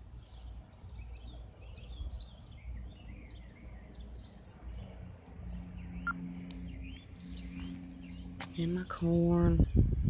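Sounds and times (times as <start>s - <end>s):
low hum: 0.0s - 10.0s
small birds chirping: 0.0s - 10.0s.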